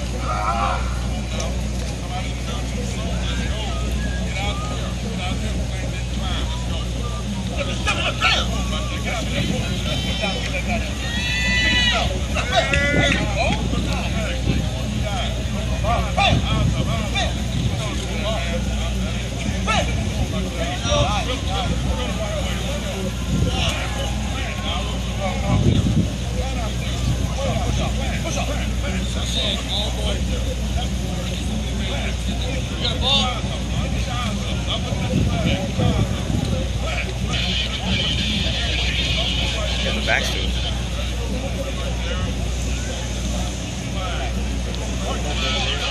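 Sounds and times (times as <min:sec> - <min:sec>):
distant voices calling and talking: 0:00.0 - 0:45.9
steady low rumble: 0:00.0 - 0:45.9.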